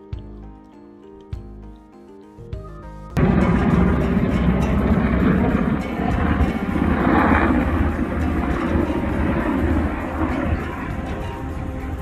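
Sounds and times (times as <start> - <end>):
music: 0.0 - 12.0
helicopter rotor rumble: 3.2 - 12.0.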